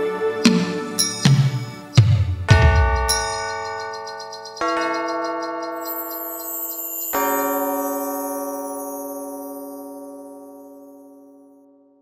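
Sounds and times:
bronze bell struck and ringing: 1.0 - 11.5.

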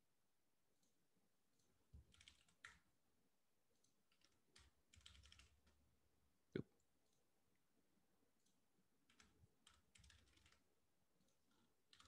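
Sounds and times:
computer keyboard typing: 1.6 - 2.9, 3.7 - 5.8, 8.4 - 12.0.

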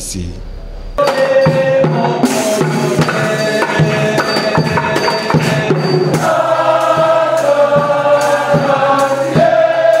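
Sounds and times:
drum strikes: 0.4 - 10.0
choir holding a chord: 1.0 - 10.0.

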